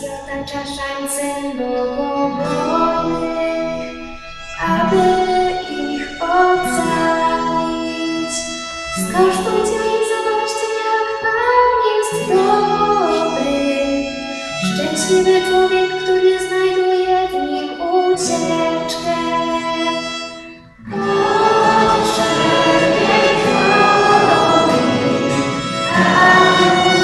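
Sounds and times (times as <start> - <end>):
violin accompaniment: 1.5 - 27.0
girls choir singing: 20.8 - 27.0.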